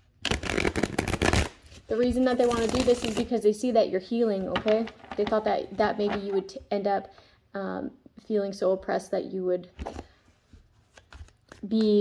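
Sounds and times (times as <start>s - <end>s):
person speaking: 1.9s - 7.1s
cards being shuffled: 9.8s - 12.0s.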